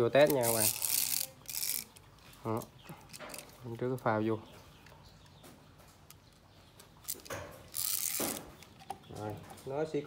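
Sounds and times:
beaded cord rattling and scraping: 0.0 - 3.8, 7.0 - 9.6.

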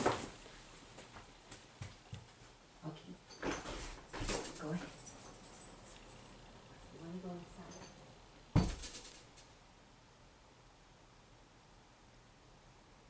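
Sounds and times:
faint movement sounds: 0.0 - 10.4.

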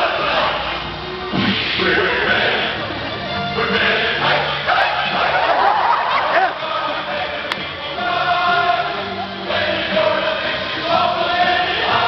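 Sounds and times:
men singing in chorus: 0.0 - 0.8, 1.4 - 2.9, 3.5 - 12.0.

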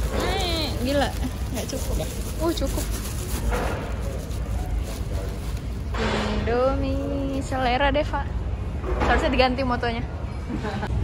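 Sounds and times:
plastic bag rustling: 0.0 - 6.0.

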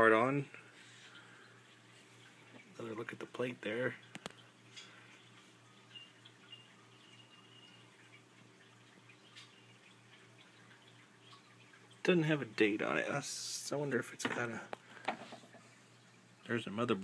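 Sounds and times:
faint clicks: 4.0 - 5.0.

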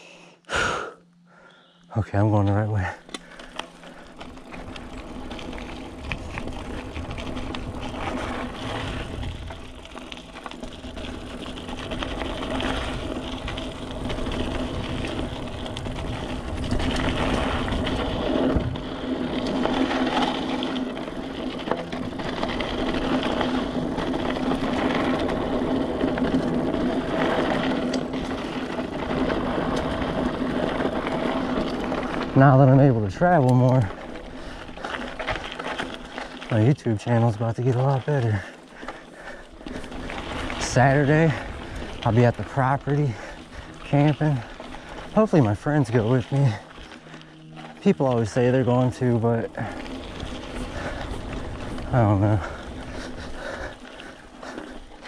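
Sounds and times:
rear hub buzzing: 1.2 - 55.0
bike rattling: 1.3 - 55.0
bike tyres crunching over dirt: 1.3 - 55.0.

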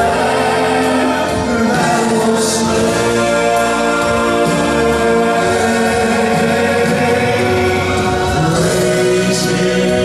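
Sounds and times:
man singing gospel: 0.0 - 10.0
musical backing: 0.0 - 10.0.

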